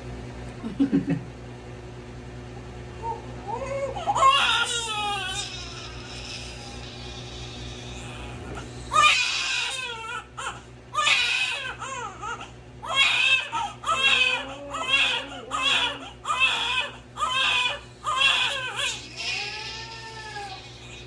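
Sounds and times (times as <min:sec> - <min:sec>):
baby crying: 0:03.0 - 0:21.0.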